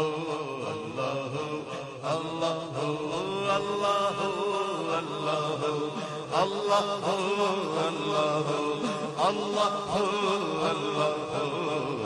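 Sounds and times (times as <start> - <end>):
men chanting devotional refrain: 0.0 - 12.0.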